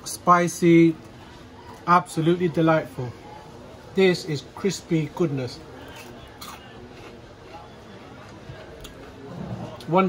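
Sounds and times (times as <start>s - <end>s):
quiet chewing: 5.8s - 9.9s
crunchy bite: 5.9s - 7.2s.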